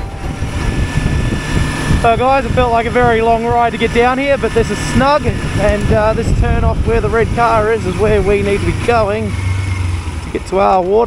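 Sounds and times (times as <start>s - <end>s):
wind noise on microphone: 0.0s - 10.4s
motorcycle engine running: 0.0s - 11.0s.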